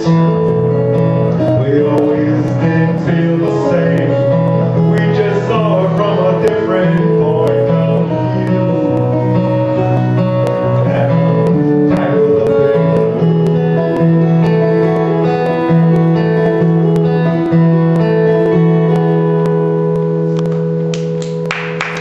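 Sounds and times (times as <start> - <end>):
acoustic guitar picking: 0.0 - 21.8.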